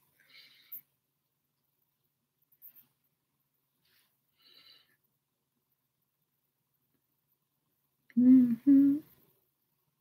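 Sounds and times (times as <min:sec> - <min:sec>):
woman humming mm-hmm: 0:08.1 - 0:09.2.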